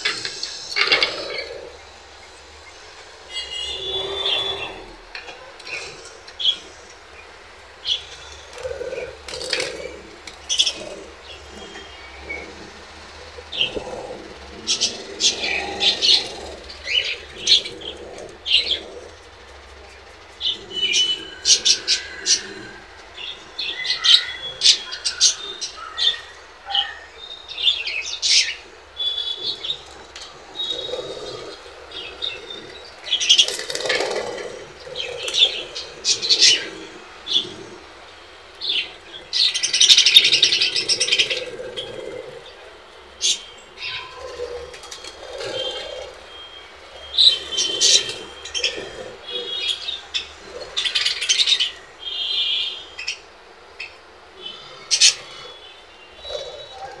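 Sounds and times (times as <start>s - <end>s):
budgerigars chirping: 0.0s - 7.2s, 34.8s - 37.6s, 38.6s - 41.8s.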